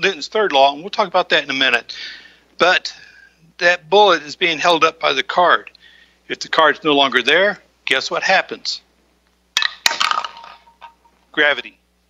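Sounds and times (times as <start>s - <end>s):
card snapping off bottle: 9.6s - 10.6s
bullet clinking into bottle: 9.6s - 11.0s.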